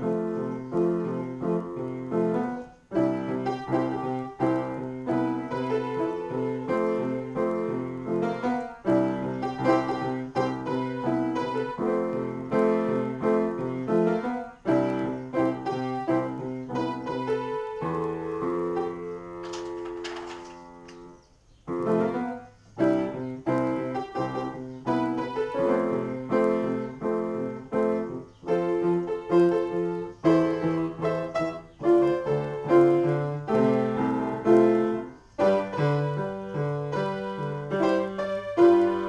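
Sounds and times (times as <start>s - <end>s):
upright piano chords: 0.0s - 39.0s.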